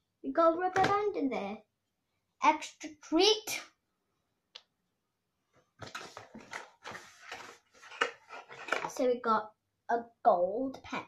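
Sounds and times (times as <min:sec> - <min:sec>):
cardboard box rustling and rattling: 0:05.8 - 0:09.0.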